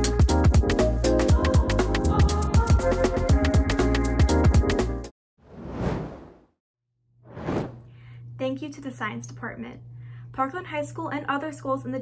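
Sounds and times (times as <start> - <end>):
whoosh: 5.5 - 6.4, 7.3 - 7.8.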